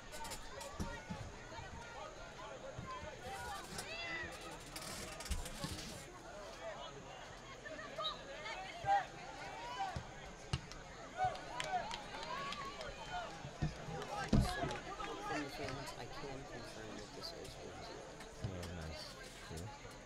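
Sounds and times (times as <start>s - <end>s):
players and spectators shouting: 6.4s - 17.2s.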